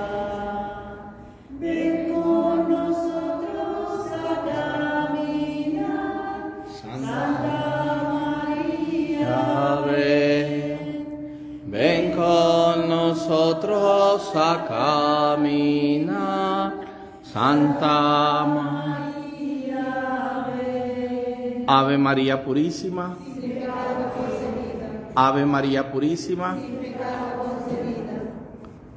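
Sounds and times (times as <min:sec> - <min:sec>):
voices singing a hymn: 0:00.0 - 0:28.9.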